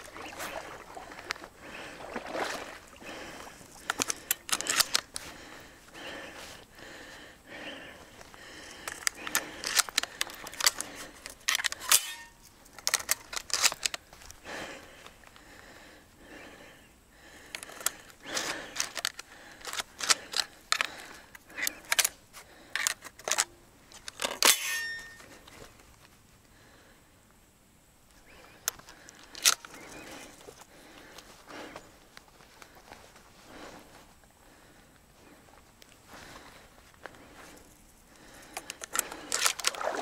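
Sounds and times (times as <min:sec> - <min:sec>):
paddle splashing water: 0:00.0 - 0:03.9, 0:39.7 - 0:40.0.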